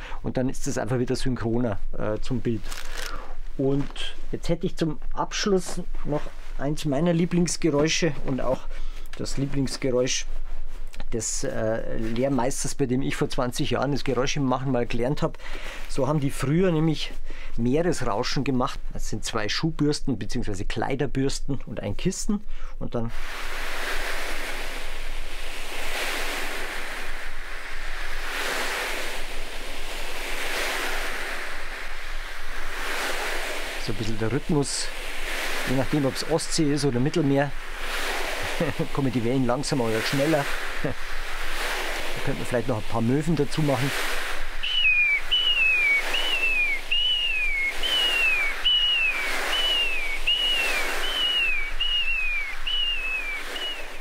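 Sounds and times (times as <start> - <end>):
brushes rushing hiss like surf: 23.1 - 54.0
whistled seagull calls: 44.5 - 54.0.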